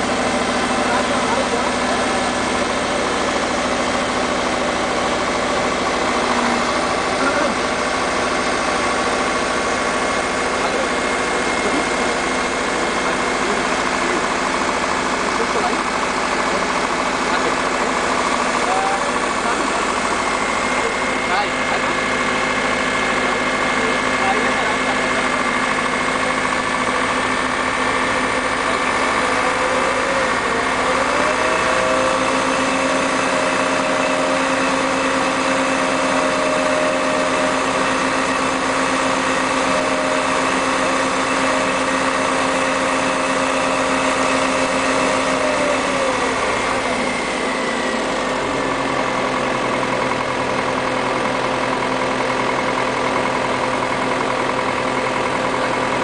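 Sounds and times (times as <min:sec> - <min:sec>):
crane engine idling: 0:00.0 - 0:56.0.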